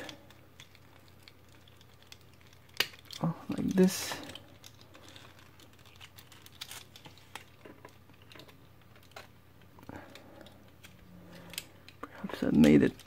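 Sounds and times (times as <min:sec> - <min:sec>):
plastic toy parts clicking: 0:00.0 - 0:09.3, 0:10.1 - 0:13.0.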